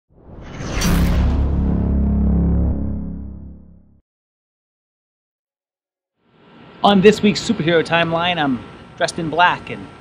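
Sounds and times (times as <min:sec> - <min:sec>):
whoosh: 0:00.1 - 0:04.0
deep held bass tone: 0:00.8 - 0:04.0.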